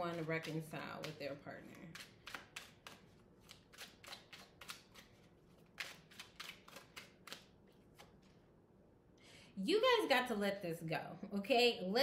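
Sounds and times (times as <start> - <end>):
cards being shuffled: 1.8 - 8.4.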